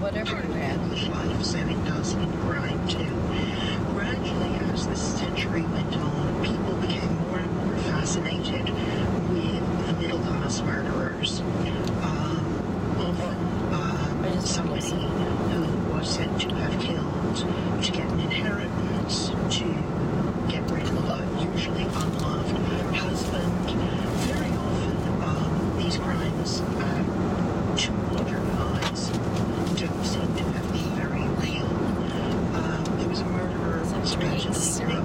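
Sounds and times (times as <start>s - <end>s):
talk radio voices: 0.0s - 27.1s, 27.8s - 35.0s
road and tyre noise in car: 0.0s - 35.0s.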